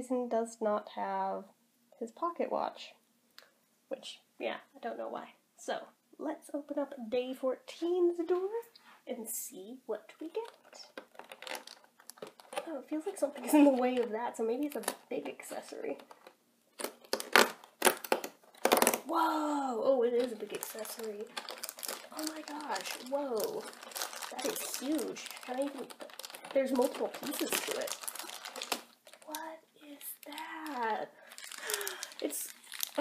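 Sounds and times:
clicks and plastic rustling: 0:10.1 - 0:19.1, 0:20.0 - 0:33.0
cardboard tearing and scraping: 0:16.8 - 0:19.1, 0:20.3 - 0:29.4.

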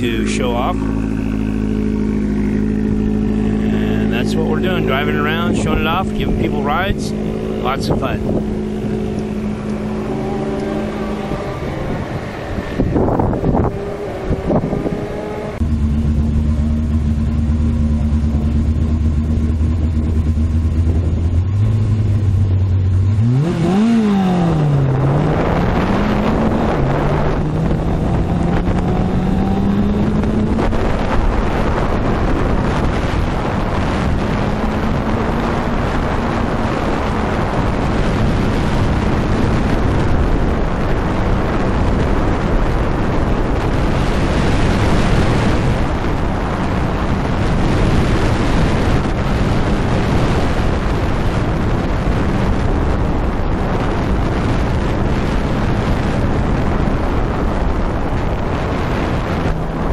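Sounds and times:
car engine idling and revving: 0:00.0 - 0:59.9
wind and road noise: 0:00.0 - 0:59.9.

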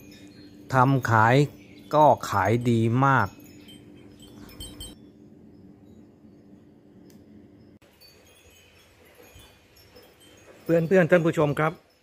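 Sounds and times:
faint high-pitched chiming: 0:00.0 - 0:12.0
small tinkling clicks: 0:00.0 - 0:12.0.

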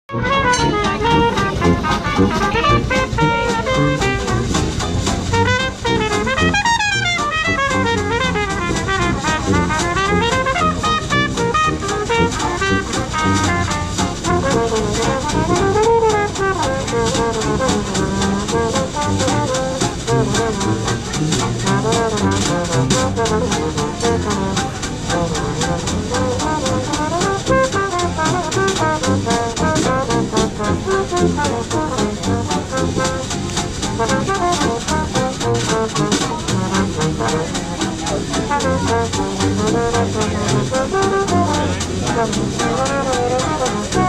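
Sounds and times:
jazz band playing: 0:00.0 - 0:44.0.

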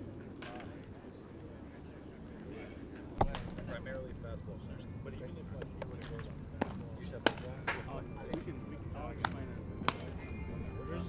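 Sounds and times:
faint voices: 0:00.0 - 0:11.0
baseballs popping into mitts: 0:03.2 - 0:03.7, 0:05.6 - 0:08.5, 0:09.2 - 0:10.2.

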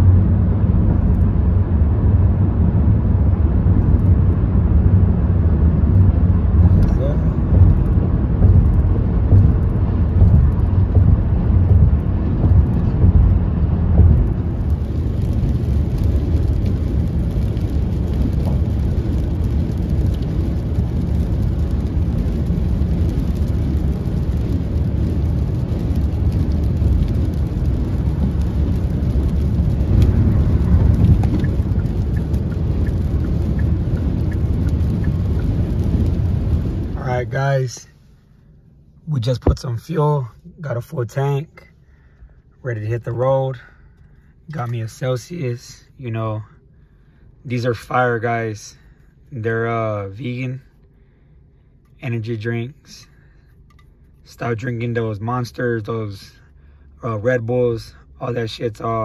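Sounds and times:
car cabin road noise: 0:00.0 - 0:59.0
rain ticking on windshield: 0:05.7 - 0:37.9.

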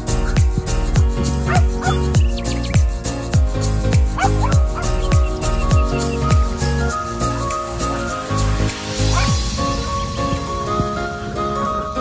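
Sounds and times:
background music with bass drum beat: 0:00.0 - 0:12.0
dog yipping: 0:01.5 - 0:02.4, 0:04.2 - 0:06.0, 0:09.2 - 0:09.4.

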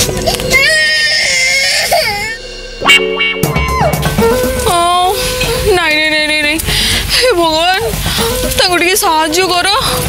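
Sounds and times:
background music: 0:00.0 - 0:10.0
young child crying: 0:00.3 - 0:02.4
loud musical hit: 0:01.8 - 0:05.8.

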